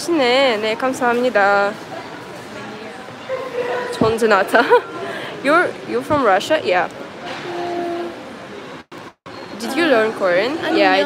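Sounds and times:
hubbub of indoor hall: 0:00.0 - 0:11.0.

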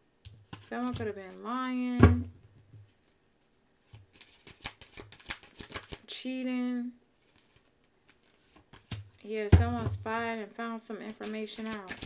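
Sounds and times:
cards being shuffled: 0:03.8 - 0:06.0, 0:07.2 - 0:09.7, 0:11.0 - 0:12.0.

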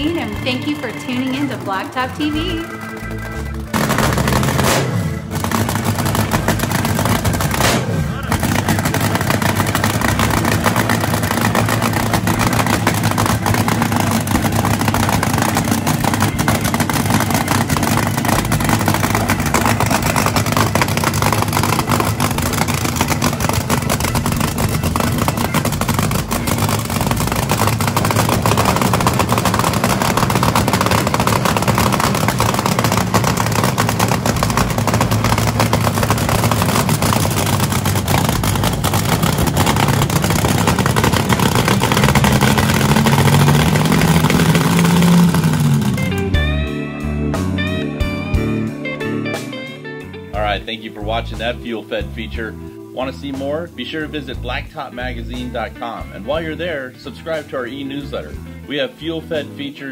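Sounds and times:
loud engine idling: 0:00.0 - 0:48.6, 0:52.4 - 0:53.4.

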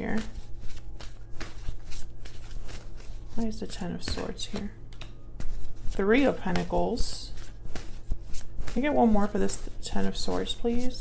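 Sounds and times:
cards being shuffled: 0:00.0 - 0:11.0
steady low hum: 0:00.0 - 0:11.0.

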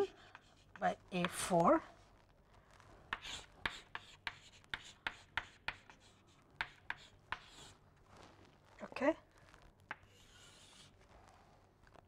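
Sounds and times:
chalk writing on a chalkboard: 0:00.0 - 0:01.4, 0:03.1 - 0:07.8, 0:09.9 - 0:11.0.

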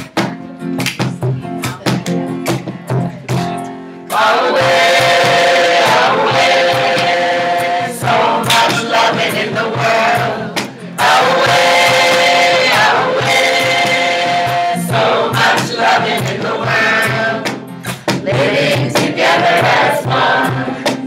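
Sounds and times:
strummed acoustic guitar: 0:00.0 - 0:21.0
congregation singing along: 0:04.1 - 0:21.0
man and woman singing: 0:04.1 - 0:21.0.

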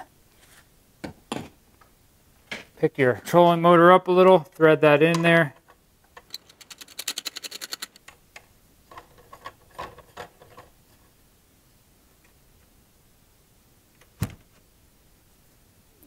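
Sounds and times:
threaded rod clicking: 0:06.2 - 0:08.1.

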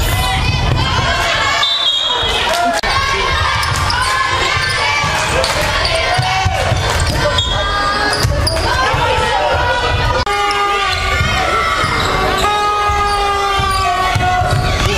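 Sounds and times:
players calling out: 0:00.0 - 0:14.9
sneakers squeaking: 0:03.3 - 0:09.3, 0:09.9 - 0:14.9
basketball bouncing on wooden court: 0:03.5 - 0:07.4, 0:10.9 - 0:14.9.

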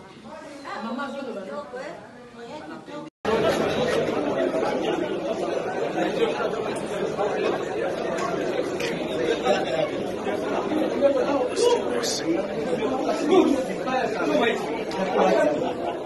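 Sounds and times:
hubbub of chatter: 0:00.0 - 0:16.0.

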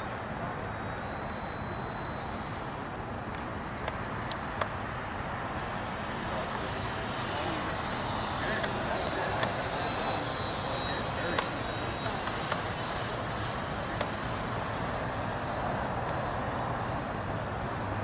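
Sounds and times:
electric ducted fans whining: 0:00.0 - 0:18.0.

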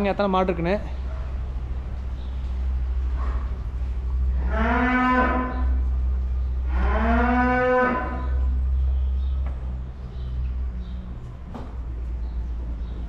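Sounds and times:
steady low hum: 0:00.0 - 0:13.0
cow mooing: 0:04.3 - 0:05.8, 0:06.6 - 0:08.6.

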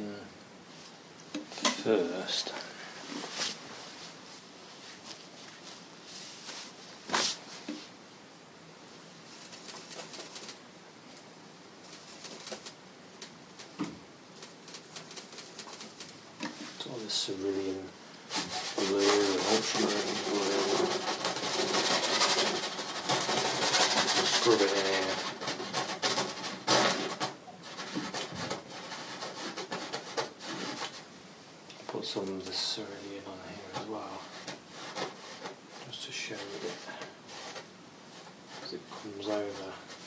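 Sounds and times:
paintbrush scrubbing on canvas: 0:14.4 - 0:31.1, 0:32.1 - 0:40.0.

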